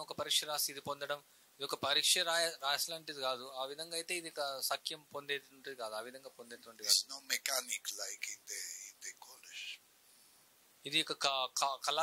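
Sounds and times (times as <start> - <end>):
man speaking softly: 0.0 - 9.8.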